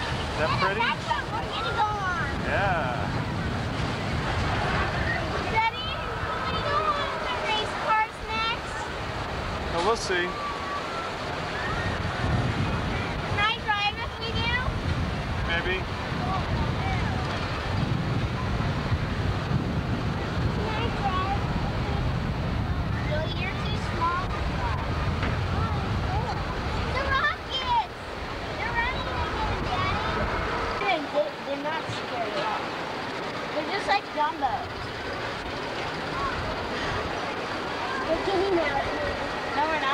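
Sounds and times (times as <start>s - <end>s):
voices chattering: 0.0s - 39.9s
wind rushing over microphone: 0.0s - 39.9s.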